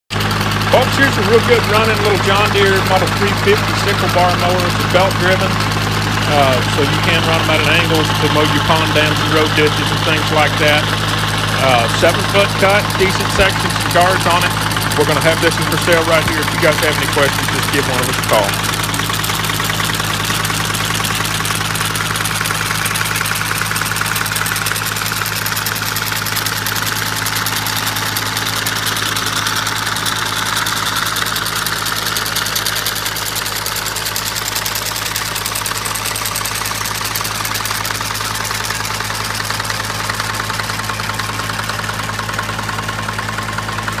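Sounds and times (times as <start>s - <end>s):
tractor engine idling: 0.1s - 44.0s.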